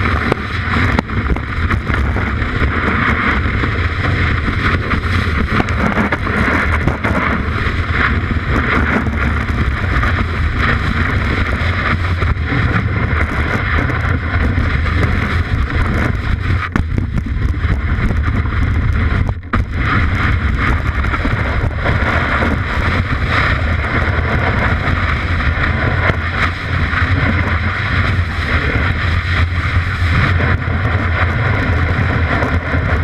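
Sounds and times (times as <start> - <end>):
snowboard running through snow: 0.0 - 33.0
wind rushing on microphone: 0.0 - 33.0.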